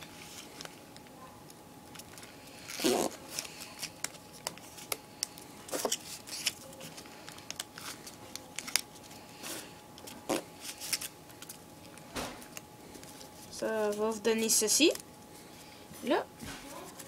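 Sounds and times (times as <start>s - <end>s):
paper crinkling while folded: 1.9s - 15.6s, 16.4s - 17.0s.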